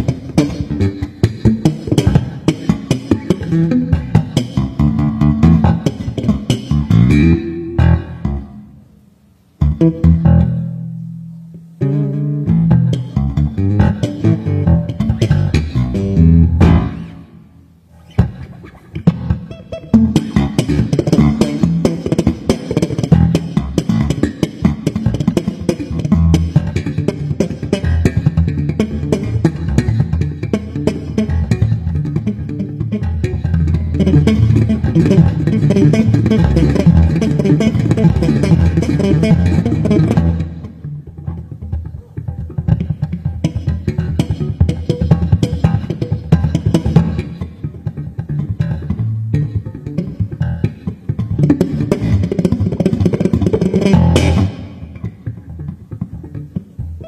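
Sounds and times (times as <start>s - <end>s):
drums: 0.0s - 8.2s, 12.6s - 17.2s, 17.9s - 32.4s, 33.0s - 40.6s, 42.7s - 47.6s, 50.1s - 55.4s
electric bass guitar: 0.0s - 57.0s
guitar: 0.0s - 57.0s.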